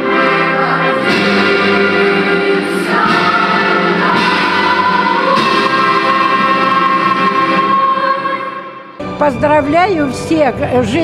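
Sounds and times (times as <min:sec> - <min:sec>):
children's choir singing: 0:00.0 - 0:09.0.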